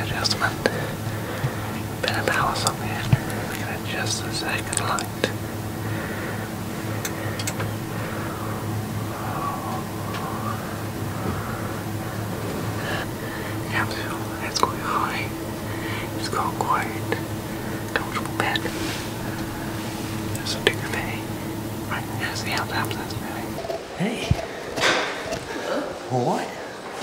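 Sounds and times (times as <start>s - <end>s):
man whispering: 0.0s - 24.5s
steady low hum: 0.0s - 27.0s.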